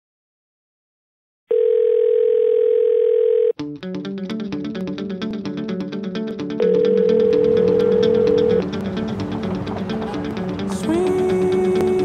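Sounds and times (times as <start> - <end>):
plucked guitar music: 3.6 - 12.0.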